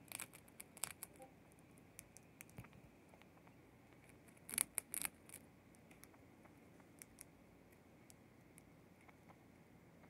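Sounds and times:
mouse gnawing crunchy treat: 0.0s - 9.4s.

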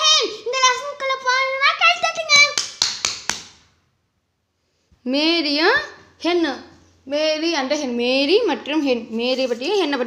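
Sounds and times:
sharp taps: 2.0s - 3.6s
person speaking: 5.1s - 10.0s.

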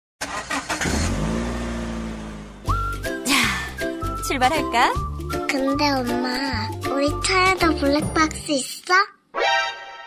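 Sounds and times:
car engine revving: 0.2s - 2.8s
short rising whistle: 2.6s - 4.2s.

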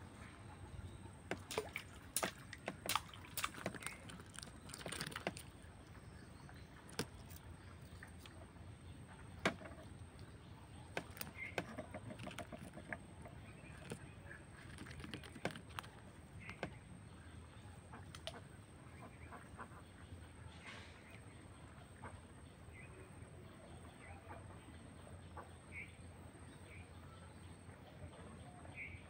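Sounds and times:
faint outdoor background: 0.0s - 29.0s
fishing rod clicks and knocks: 6.9s - 7.4s, 9.4s - 10.3s, 10.9s - 14.0s, 14.8s - 16.8s.

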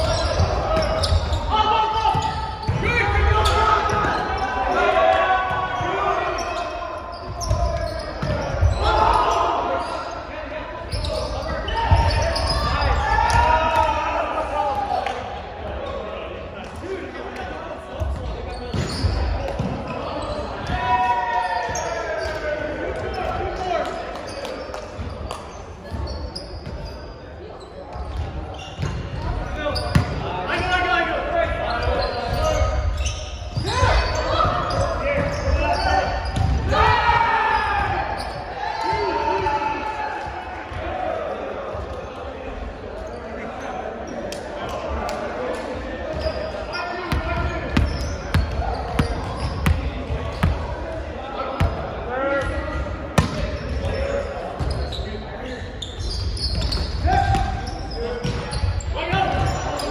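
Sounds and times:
players calling out: 0.0s - 25.2s, 27.6s - 59.9s.

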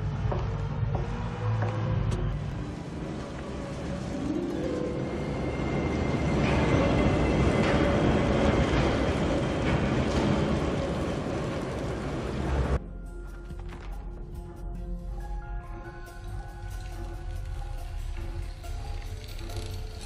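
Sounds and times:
film score held tones: 0.0s - 20.0s
rain: 2.4s - 12.8s.

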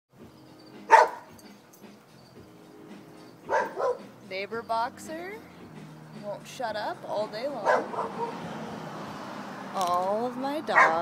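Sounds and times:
dog barking: 0.9s - 1.3s, 3.5s - 4.1s, 7.6s - 8.4s, 10.8s - 11.0s.

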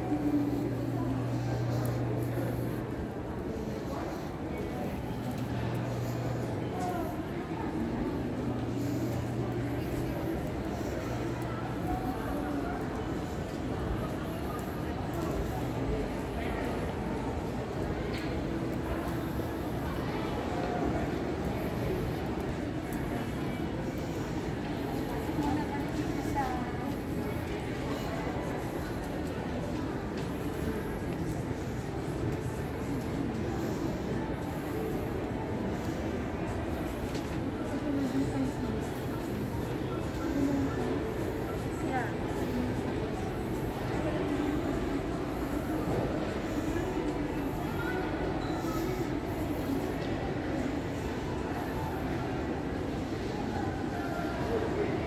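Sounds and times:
distant voices: 0.0s - 52.8s.

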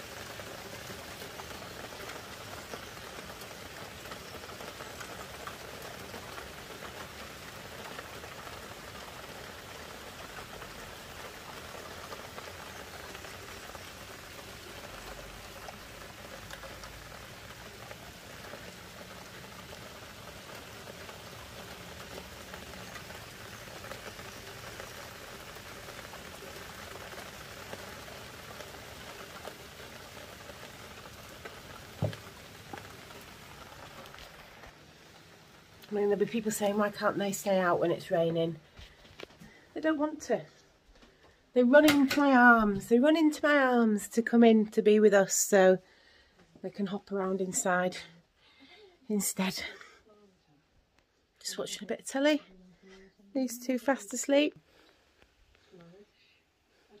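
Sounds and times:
heavy rain: 0.0s - 43.6s.

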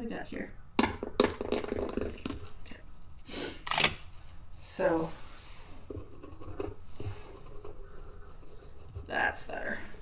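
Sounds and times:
pen tip scratching wax: 5.9s - 9.6s.

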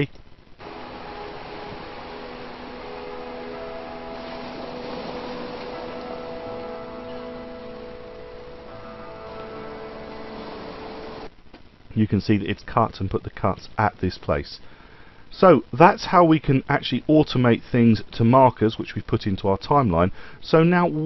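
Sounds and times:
sea and surf noise: 0.6s - 11.3s
slow music with held notes: 0.6s - 11.3s.

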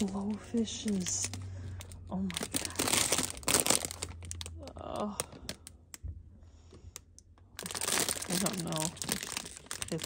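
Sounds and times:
cellophane bag crinkling: 0.0s - 5.8s, 7.5s - 10.0s.

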